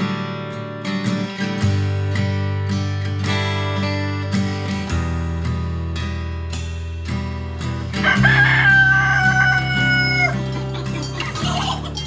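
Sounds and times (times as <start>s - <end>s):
background music: 0.0s - 12.0s
rooster crowing: 8.0s - 10.5s.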